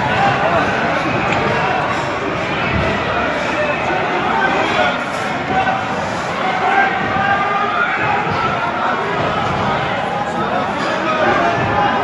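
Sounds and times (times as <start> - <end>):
people's raised voices: 0.0 - 12.0.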